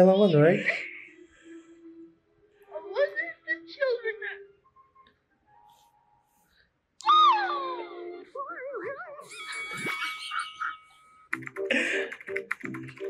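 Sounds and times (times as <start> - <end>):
loud pitched sliding wavering sound: 9.3 - 11.0.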